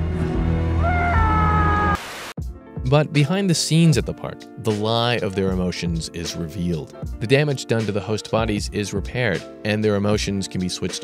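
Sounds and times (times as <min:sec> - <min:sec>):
high wailing cry: 0:00.8 - 0:02.0.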